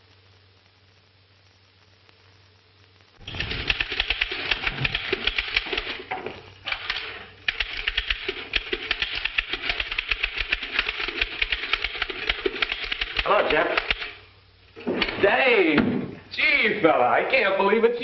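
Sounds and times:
typewriter keys clattering: 3.3 - 6.0, 6.7 - 14.1.

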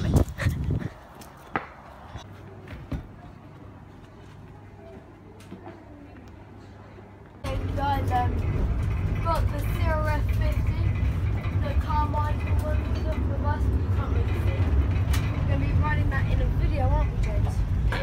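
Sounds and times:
people talking: 7.4 - 8.5, 9.2 - 11.0, 11.6 - 18.0.

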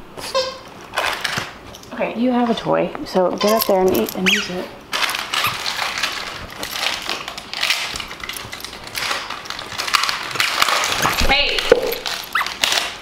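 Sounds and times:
dog scuffling with plush toys: 0.9 - 13.0.

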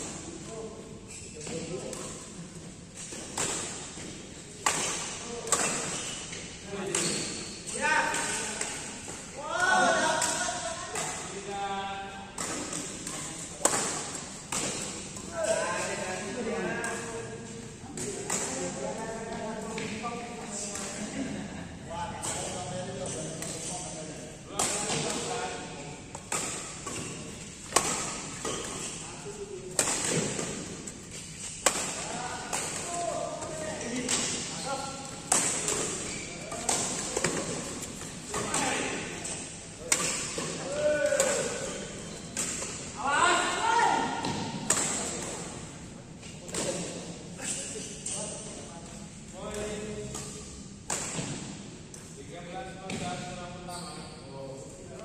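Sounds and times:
players' voices: 0.1 - 51.4
rackets striking shuttlecock: 26.1 - 29.0, 29.7 - 42.9.

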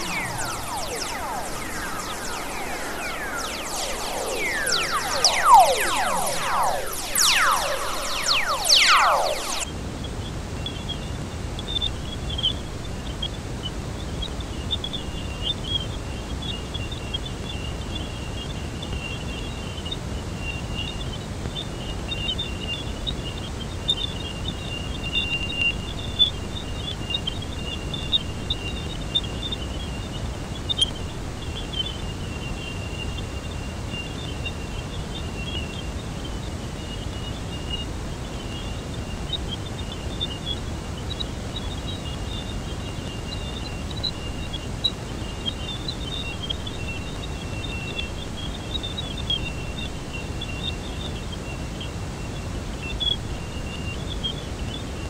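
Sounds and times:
high flickering chirps: 0.0 - 9.7, 24.2 - 30.0, 43.1 - 50.7
steady hiss: 0.0 - 10.6
faint steady tone: 0.0 - 55.0.

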